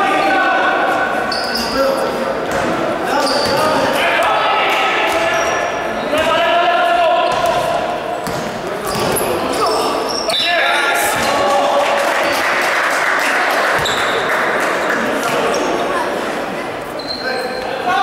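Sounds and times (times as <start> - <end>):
players calling out: 0.0 - 12.5.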